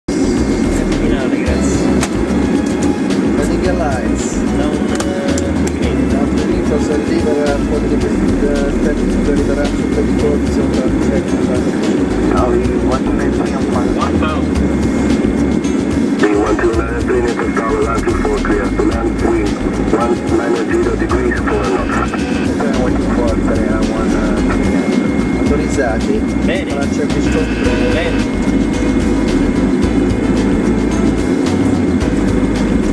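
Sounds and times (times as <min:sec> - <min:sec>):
indistinct voices: 0:00.1 - 0:29.7
engine and airflow rush: 0:00.1 - 0:32.9.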